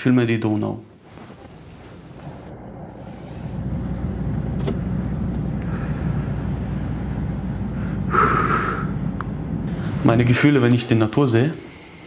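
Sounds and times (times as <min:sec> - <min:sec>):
car cabin road and engine rumble: 0:01.4 - 0:11.1.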